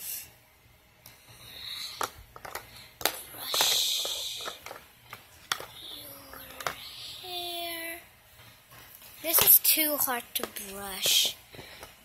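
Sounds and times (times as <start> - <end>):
plastic toys knocked and shuffled: 1.9 - 7.1, 8.7 - 12.0.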